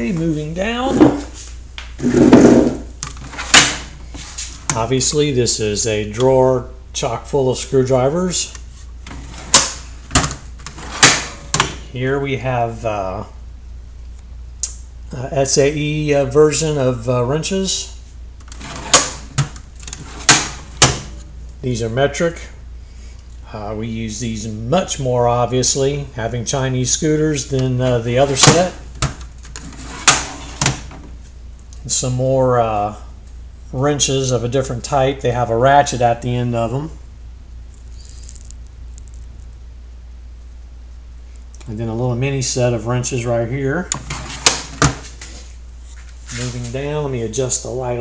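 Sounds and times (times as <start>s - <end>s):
low background hum: 0.0s - 48.0s.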